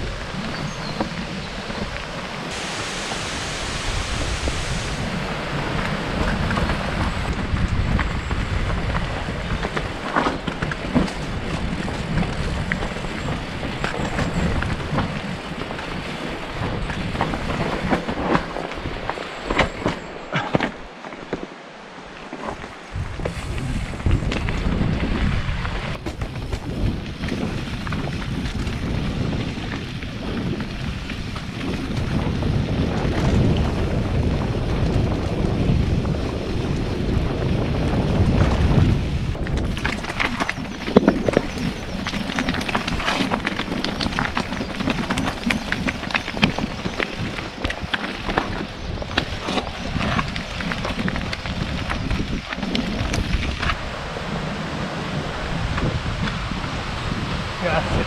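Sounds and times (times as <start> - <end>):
wind rumbling on microphone: 0.0 - 58.0
bike rattling over bumps: 4.9 - 21.6, 22.2 - 58.0
tyres on stones: 16.8 - 21.6, 39.4 - 53.8.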